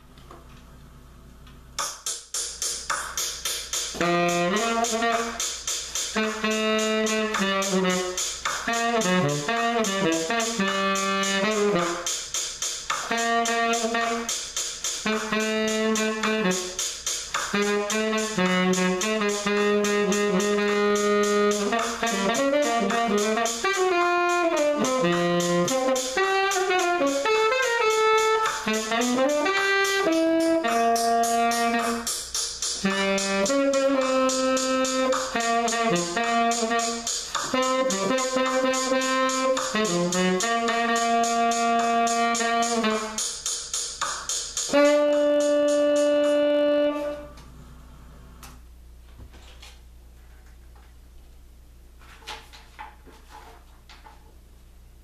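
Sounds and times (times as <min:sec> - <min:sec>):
rhythmic accompaniment: 0:01.6 - 0:47.4
saxophone melody: 0:03.9 - 0:12.2, 0:13.0 - 0:43.4, 0:44.6 - 0:47.4.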